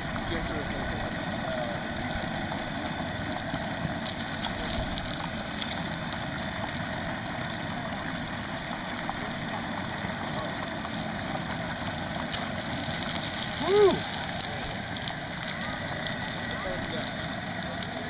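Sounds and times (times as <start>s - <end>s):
hot oil sizzling and bubbling: 0.0s - 18.0s.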